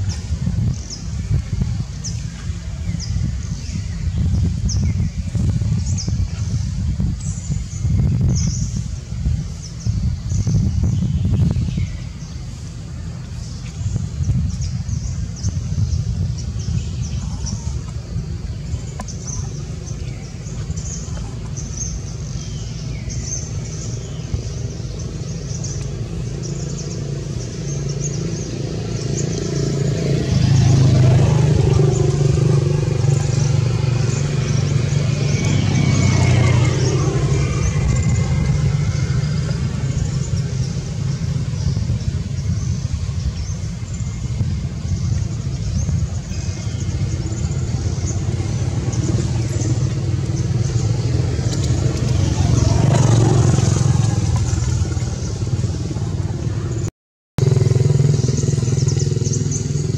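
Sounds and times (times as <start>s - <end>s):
motor traffic engine rumble: 0.0s - 59.9s.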